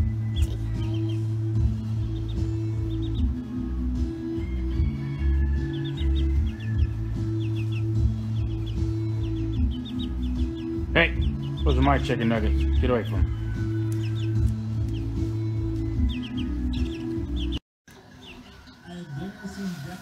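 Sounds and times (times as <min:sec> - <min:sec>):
chicks peeping: 0:00.0 - 0:19.9
background music: 0:00.0 - 0:20.0.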